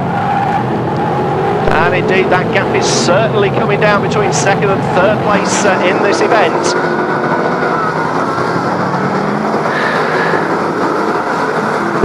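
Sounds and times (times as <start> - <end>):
stock car engines racing past: 0.0 - 12.0.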